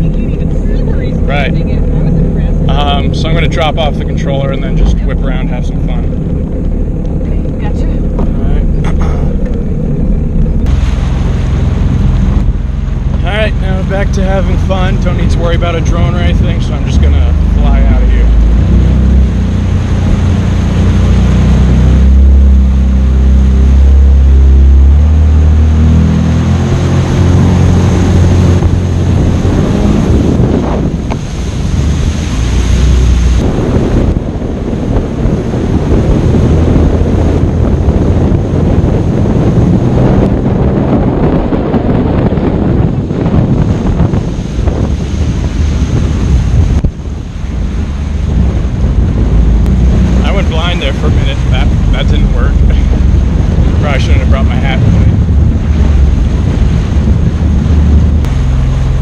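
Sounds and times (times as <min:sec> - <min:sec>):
jet ski engine: 0:00.0 - 0:59.0
water rushing past hull: 0:00.0 - 0:59.0
wind buffeting microphone: 0:00.0 - 0:59.0.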